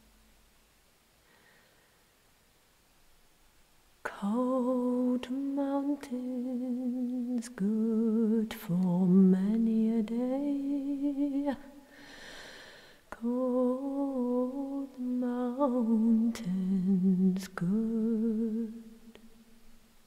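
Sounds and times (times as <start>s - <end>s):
person singing wordless melody: 4.0s - 11.9s, 13.1s - 19.3s.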